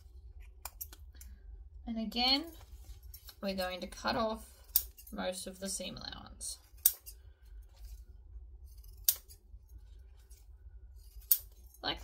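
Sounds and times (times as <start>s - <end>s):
scissors snipping: 0.4s - 1.1s, 4.7s - 5.1s, 6.7s - 7.2s, 8.7s - 9.4s, 11.1s - 11.6s.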